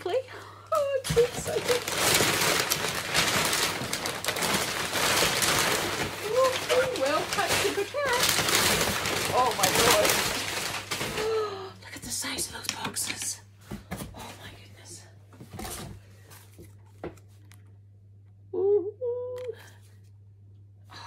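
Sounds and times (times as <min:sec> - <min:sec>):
packing paper crackling and rustling: 0:00.0 - 0:11.6.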